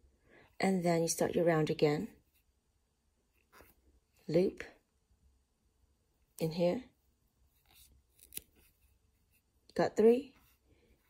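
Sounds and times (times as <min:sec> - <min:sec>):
crochet hook rustling through yarn: 0:00.4 - 0:04.7, 0:06.2 - 0:11.0.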